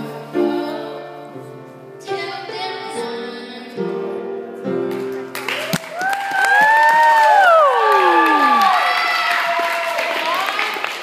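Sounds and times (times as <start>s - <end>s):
audience cheering and whooping: 5.5s - 10.8s.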